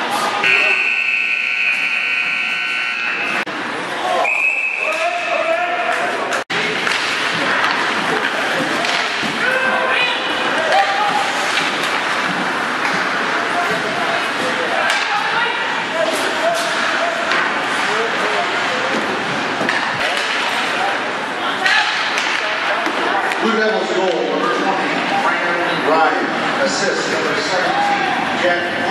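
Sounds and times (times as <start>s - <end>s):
crowd talking and calling out: 0.0s - 28.9s
hockey sticks and puck knocking: 6.8s - 9.5s.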